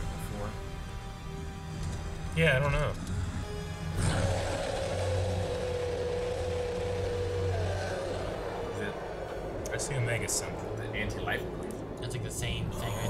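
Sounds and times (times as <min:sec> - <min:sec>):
dramatic film score: 0:00.0 - 0:13.0
low rumbling drone: 0:00.0 - 0:13.0.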